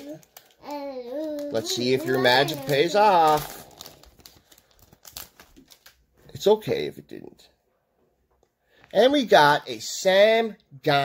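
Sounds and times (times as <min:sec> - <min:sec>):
foil wrapper crinkling: 0:00.0 - 0:06.1.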